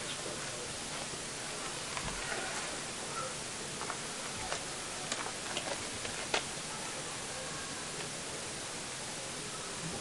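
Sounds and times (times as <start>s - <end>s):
background hiss: 0.0s - 10.0s.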